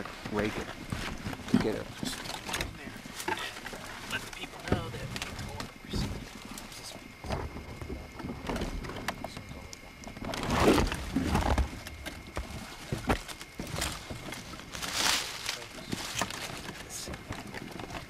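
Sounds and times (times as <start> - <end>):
rustling and crackling in brush: 0.0 - 18.0.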